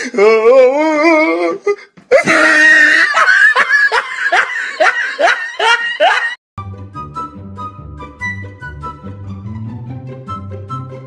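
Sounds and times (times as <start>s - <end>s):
person laughing in high bursts: 2.1s - 6.4s.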